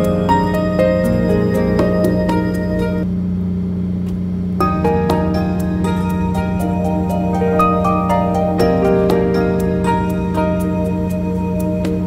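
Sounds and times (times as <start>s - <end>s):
background music: 0.0s - 3.0s, 4.6s - 12.0s
boat engine droning: 0.0s - 12.0s.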